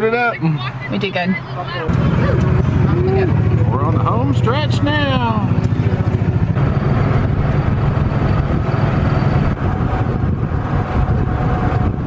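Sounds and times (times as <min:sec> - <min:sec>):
golf cart rumbling on road: 0:00.0 - 0:12.0.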